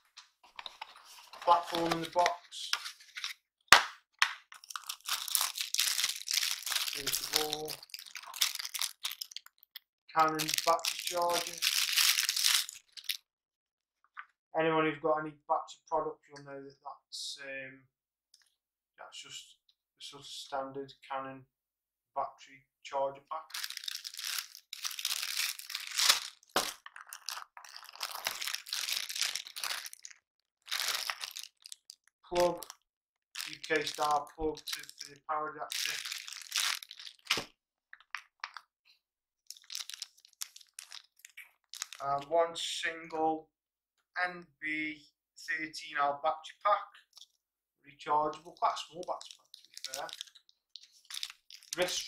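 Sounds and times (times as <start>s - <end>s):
plastic bag crinkling: 0.6s - 3.4s, 4.5s - 13.2s, 23.5s - 32.8s, 33.4s - 38.6s, 39.5s - 42.0s, 48.3s - 52.0s.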